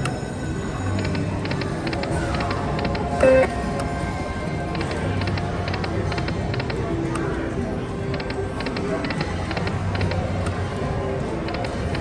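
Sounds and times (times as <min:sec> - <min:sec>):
slot machine game music: 0:00.9 - 0:04.0.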